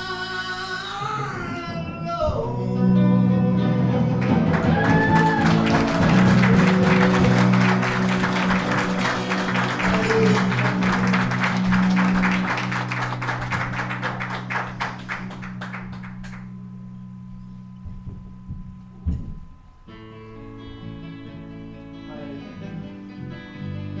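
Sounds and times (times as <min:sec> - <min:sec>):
band playing low chords: 0:00.0 - 0:24.0
dense clapping: 0:04.2 - 0:16.6.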